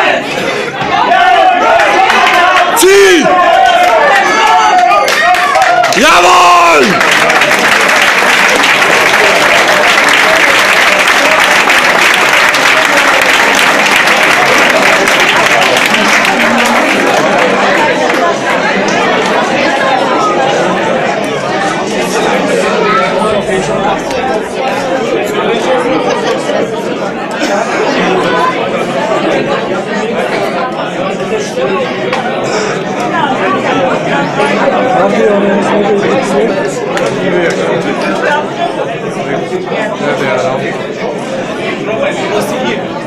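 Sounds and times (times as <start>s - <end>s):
crowd chatter in a large hall: 0.0s - 43.0s.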